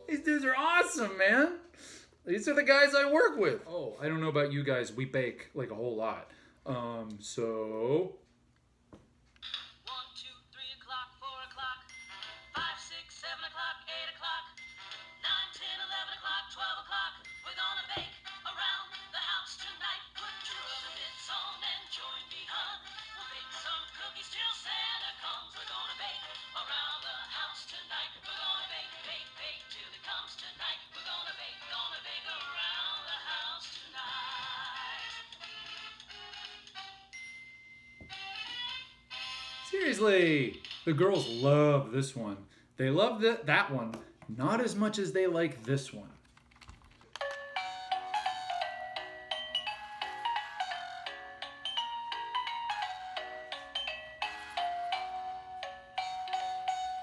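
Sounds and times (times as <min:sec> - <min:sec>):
song with singing from small speaker: 0:09.4 - 0:37.4, 0:38.0 - 0:39.8.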